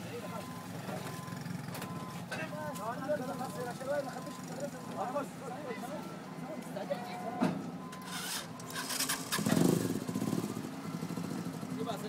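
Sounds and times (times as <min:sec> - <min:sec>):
motor vehicle engine running: 0:00.0 - 0:06.6, 0:07.6 - 0:12.0.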